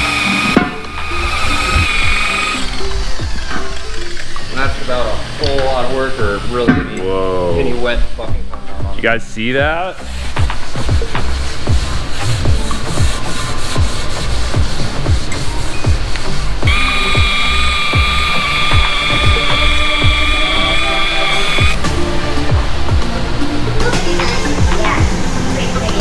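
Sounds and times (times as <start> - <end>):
angle grinder whining: 0.0 - 4.5, 16.6 - 21.8
background music with beat: 0.0 - 26.0.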